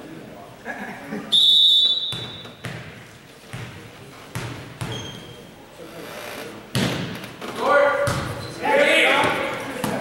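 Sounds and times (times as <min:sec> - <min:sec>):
referee's whistle blast: 0:01.3 - 0:02.6
volleyball bouncing on gym floor: 0:02.1 - 0:05.2, 0:06.7 - 0:07.2, 0:08.0 - 0:08.4, 0:09.2 - 0:10.0.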